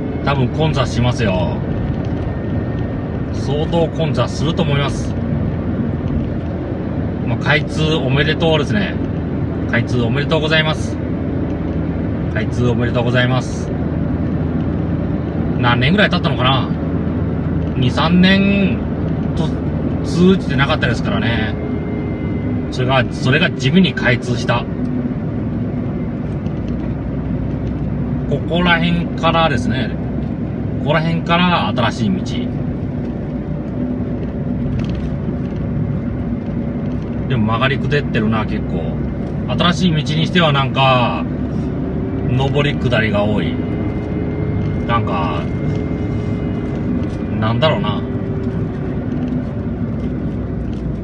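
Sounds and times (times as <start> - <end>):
road and engine noise in car: 0.0 - 51.0.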